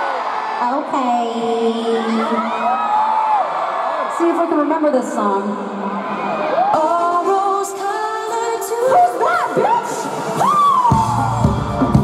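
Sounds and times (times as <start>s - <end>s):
person singing and whooping: 8.6s - 12.0s
rock band playing live: 10.9s - 12.0s.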